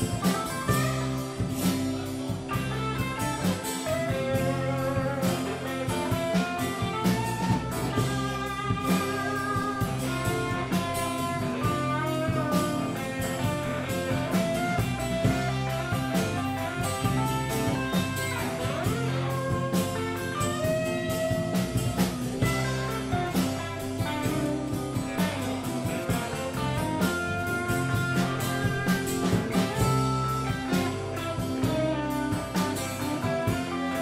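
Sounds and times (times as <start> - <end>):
electric bass: 0.0 - 34.0
electric guitar lead lines: 0.0 - 34.0
steady drum beat: 0.0 - 34.0
strummed acoustic guitar: 0.0 - 34.0.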